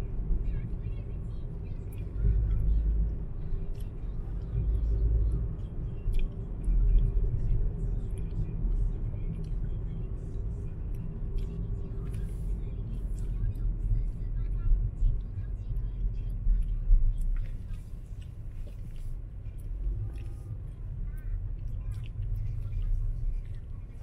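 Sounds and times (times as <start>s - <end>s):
car engine rumble: 0.0s - 24.0s.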